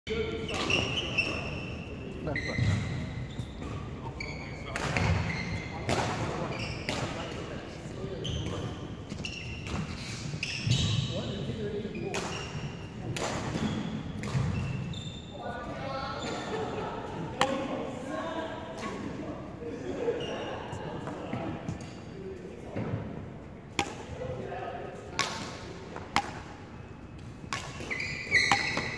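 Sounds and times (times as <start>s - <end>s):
shoes squeaking on court: 0.4s - 7.3s, 8.2s - 12.9s, 13.5s - 15.4s, 26.8s - 28.9s
badminton racket hitting shuttlecock: 23.8s - 24.2s, 25.2s - 26.6s, 27.5s - 28.9s.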